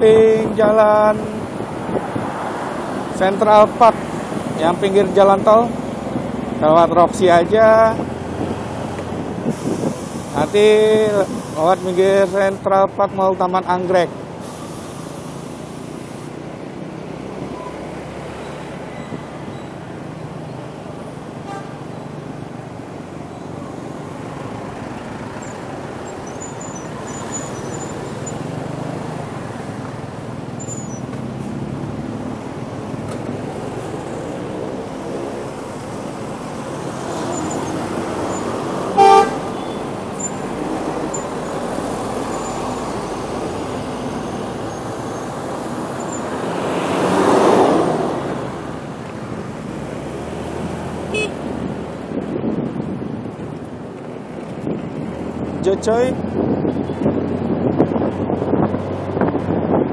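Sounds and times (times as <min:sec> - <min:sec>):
loud rush of passing vehicle: 0:00.0 - 0:12.7, 0:13.8 - 0:59.9
city street traffic: 0:00.0 - 0:59.9
vehicle horn toot: 0:21.4 - 0:21.8, 0:39.0 - 0:39.8, 0:51.1 - 0:51.4.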